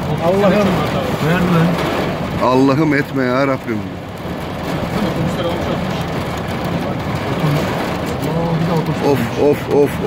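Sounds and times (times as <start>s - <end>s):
driving rain: 0.0s - 10.0s
vehicle engine running: 0.0s - 10.0s
wind: 0.0s - 10.0s.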